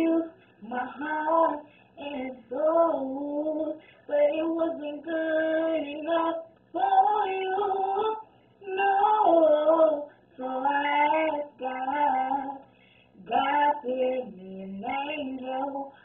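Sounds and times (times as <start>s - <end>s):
girl singing a cappella: 0.0s - 16.0s.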